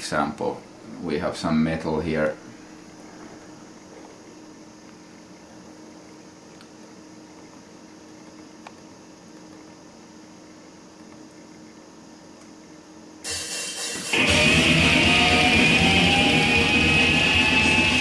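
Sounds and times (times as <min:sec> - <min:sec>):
electric guitar slide: 0:13.3 - 0:18.0
heavy metal music over loudspeaker: 0:13.3 - 0:18.0.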